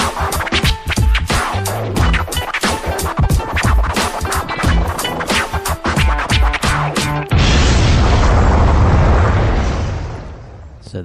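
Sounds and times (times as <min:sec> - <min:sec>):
hip-hop track: 0:00.0 - 0:07.3
explosion-like rumble and hiss: 0:07.3 - 0:11.0.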